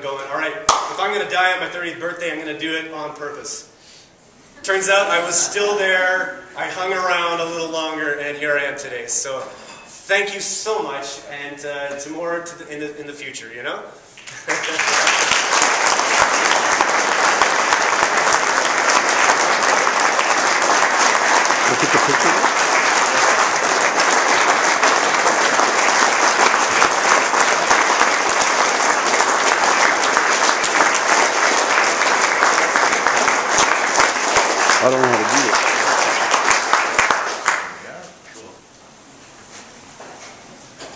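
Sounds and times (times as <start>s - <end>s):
audience applauding: 14.3s - 37.8s
person giving a speech: 21.6s - 22.5s.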